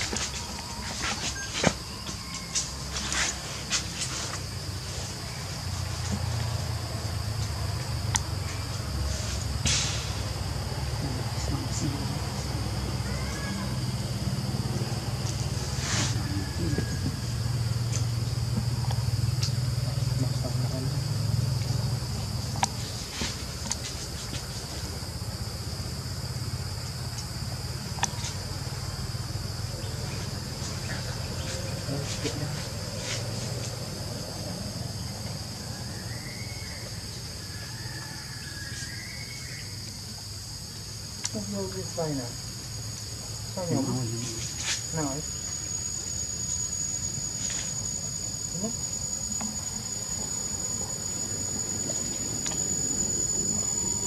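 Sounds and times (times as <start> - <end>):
insects droning: 0.0 - 54.0
rising-and-falling chirps: 45.4 - 54.0.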